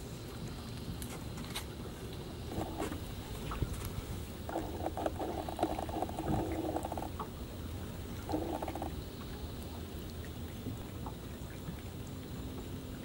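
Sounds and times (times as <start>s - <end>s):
fishing reel ticking whirr: 4.3s - 7.4s, 8.2s - 9.2s.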